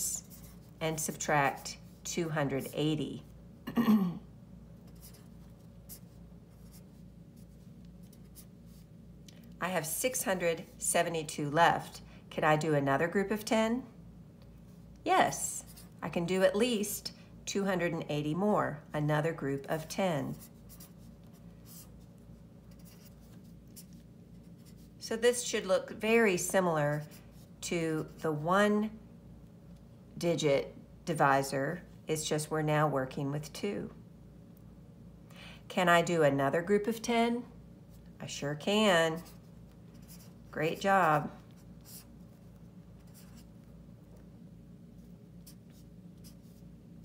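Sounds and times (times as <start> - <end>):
low steady hum: 0.0 - 47.0
marker writing on paper: 22.6 - 24.9, 39.2 - 40.4, 43.0 - 43.5.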